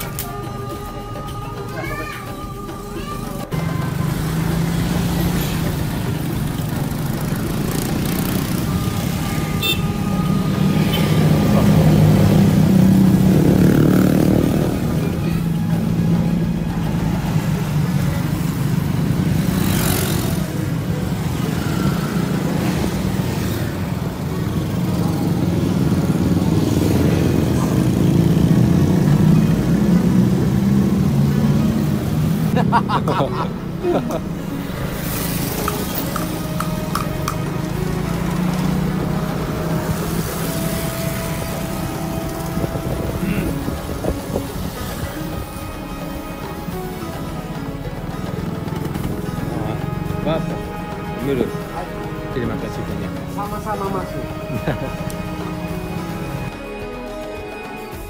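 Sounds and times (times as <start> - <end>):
passing traffic: 0.0 - 58.0
road and wind noise: 0.0 - 58.0
motorcycle engine running: 3.5 - 32.5, 46.7 - 50.9.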